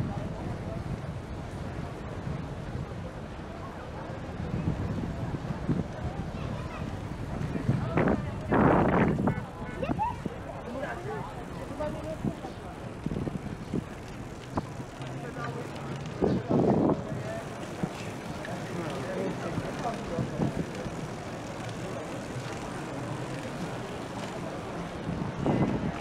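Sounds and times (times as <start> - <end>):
city traffic drone: 0.0 - 26.0.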